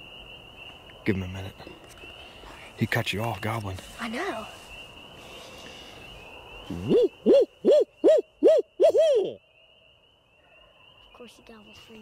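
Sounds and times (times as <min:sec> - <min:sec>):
person imitating owl hoot: 0:06.7 - 0:09.4.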